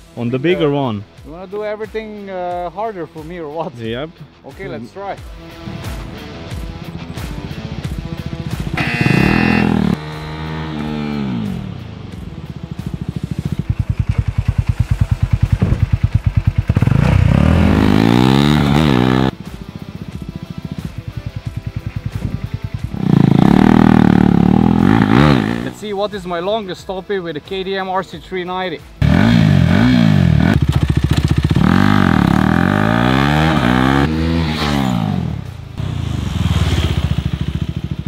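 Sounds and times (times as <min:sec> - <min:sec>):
background music: 0:00.0 - 0:36.1
motorcycle engine revving: 0:05.8 - 0:25.9, 0:29.0 - 0:38.0.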